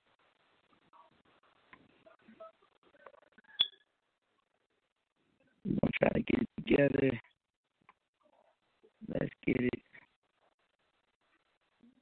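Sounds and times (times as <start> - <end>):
short electronic beeps: 3.5 - 3.8.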